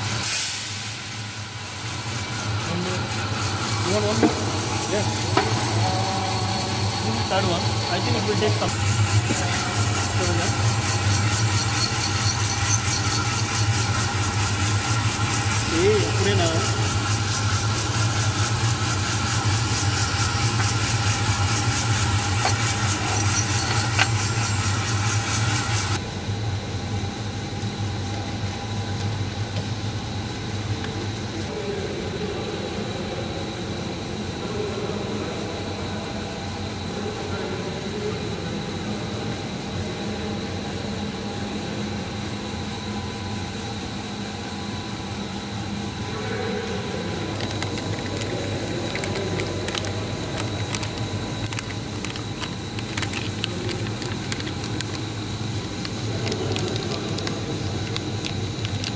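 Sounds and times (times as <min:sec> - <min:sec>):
coffee roaster fan noise: 0:00.0 - 0:58.9.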